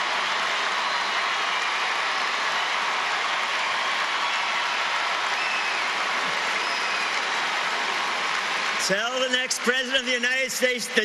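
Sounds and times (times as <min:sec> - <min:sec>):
large audience applauding: 0:00.0 - 0:11.0.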